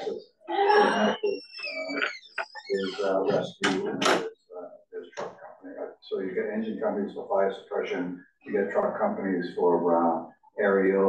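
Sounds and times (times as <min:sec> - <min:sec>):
murmured speech: 0:00.0 - 0:11.0.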